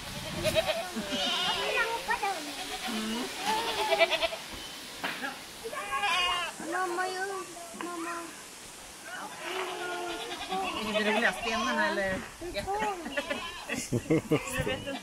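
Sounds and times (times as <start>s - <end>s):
goats bleating: 0.1s - 4.4s, 5.7s - 6.6s, 9.2s - 12.0s, 12.7s - 15.0s
young children's voices: 0.7s - 4.1s, 5.6s - 11.0s, 12.4s - 14.4s.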